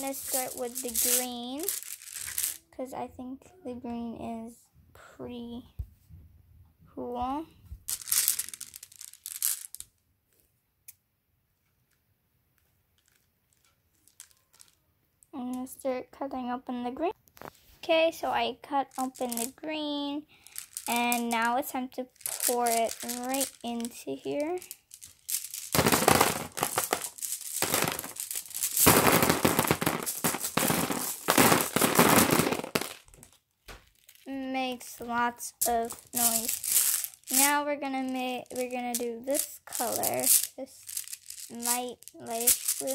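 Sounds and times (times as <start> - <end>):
mesh bag of marbles crinkling: 0.0 - 2.6, 7.9 - 9.9, 13.0 - 14.8, 18.9 - 19.6, 20.3 - 34.4, 35.6 - 42.9.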